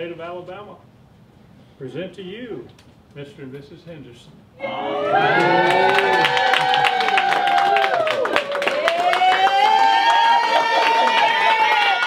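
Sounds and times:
crowd cheering and clapping: 4.6s - 12.0s
long held shouts: 4.6s - 12.0s.

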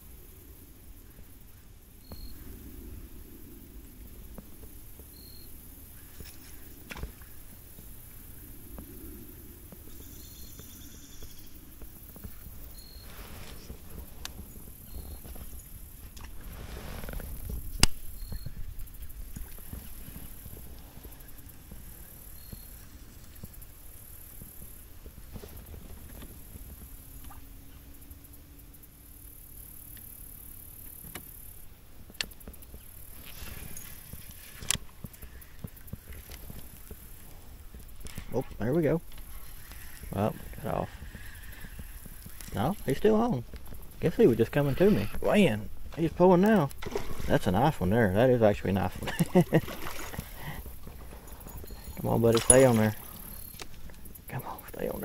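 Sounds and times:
wind rumbling on microphone: 0.0s - 28.3s, 30.2s - 55.0s.

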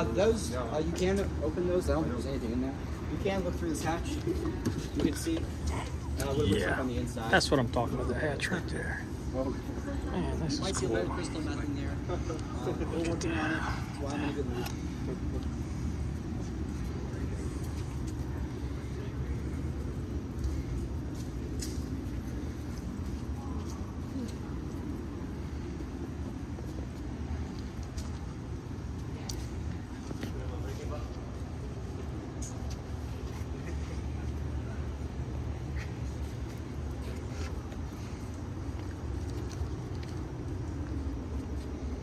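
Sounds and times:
people talking: 0.0s - 15.9s
steady low rumble: 0.0s - 42.0s.

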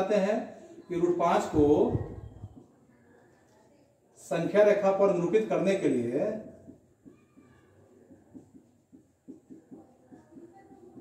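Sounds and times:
marker squeaking on whiteboard: 1.4s - 3.5s, 5.4s - 11.0s.

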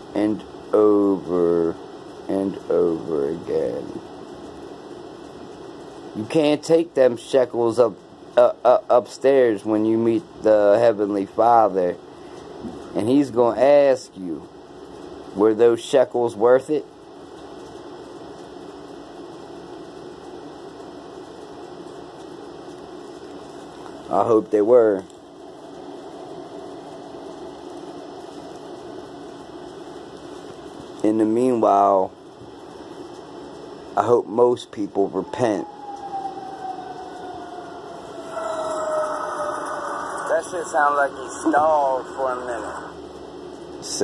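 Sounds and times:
steady background hum and hiss: 0.0s - 44.0s
higher tone: 35.1s - 42.9s
motor whine: 35.2s - 43.0s.

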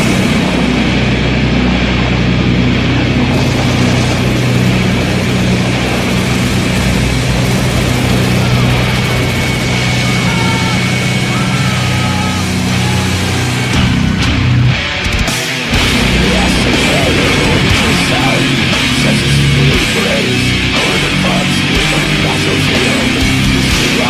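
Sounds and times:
loud low engine drone: 0.0s - 24.0s.

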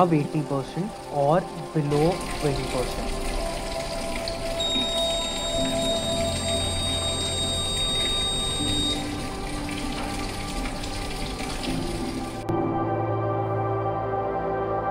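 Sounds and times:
high-pitched alarm buzzer: 4.6s - 9.2s.

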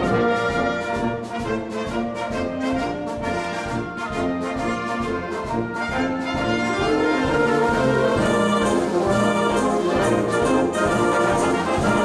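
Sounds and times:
wind band playing held chords: 0.0s - 12.0s.

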